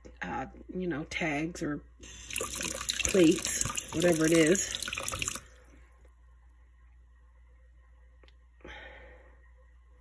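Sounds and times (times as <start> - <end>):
tap water splashing into sink: 2.2 - 5.4.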